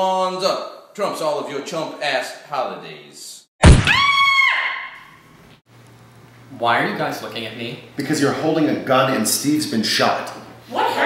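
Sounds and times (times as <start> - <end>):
high-pitched wail: 3.6 - 5.0.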